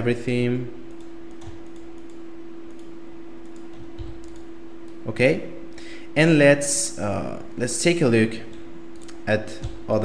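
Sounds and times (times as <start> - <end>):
steady hum: 0.0 - 10.0
mouse and key clicks: 0.9 - 5.0.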